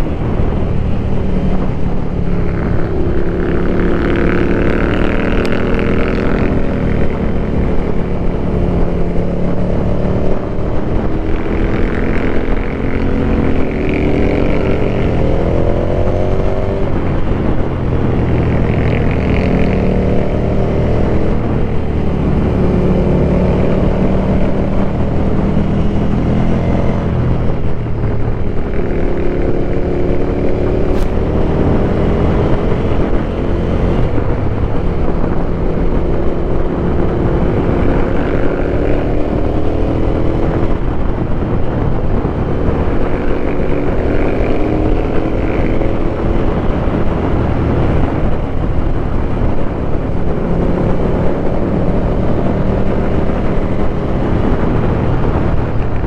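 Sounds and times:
motorcycle engine: 0.0s - 56.0s.

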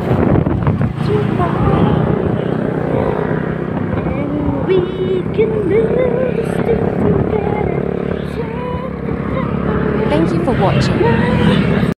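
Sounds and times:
motorcycle engine: 0.0s - 11.9s
wind noise on microphone: 0.0s - 11.9s.

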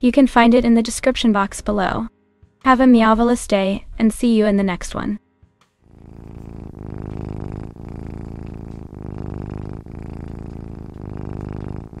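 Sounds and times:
cat purring: 5.8s - 12.0s.

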